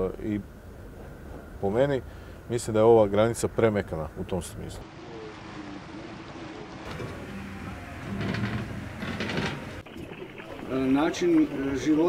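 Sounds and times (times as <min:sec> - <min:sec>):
water churning past hull: 0:04.8 - 0:12.0
motorboat motor droning: 0:04.9 - 0:12.0.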